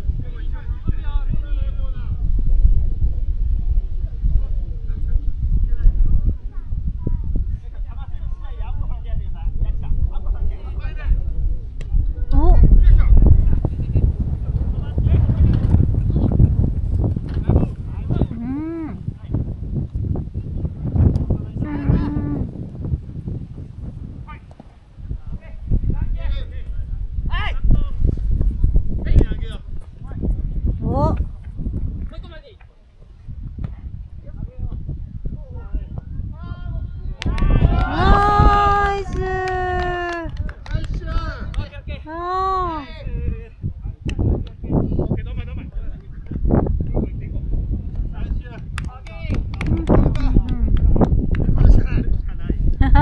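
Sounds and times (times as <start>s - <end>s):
wind rumble on microphone: 0.0s - 53.0s.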